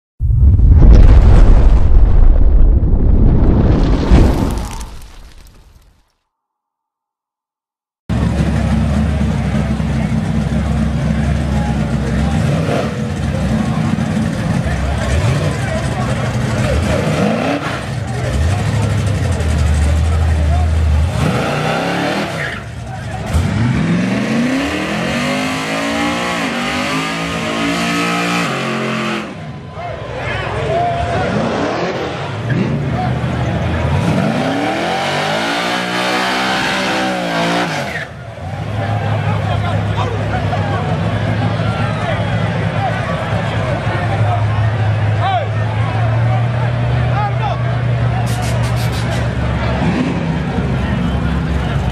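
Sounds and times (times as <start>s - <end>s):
low engine rumble: 8.1s - 17.0s.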